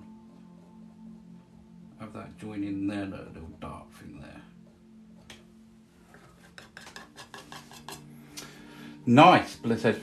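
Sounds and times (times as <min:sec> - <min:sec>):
palette knife scraping palette: 0:06.4 - 0:08.1.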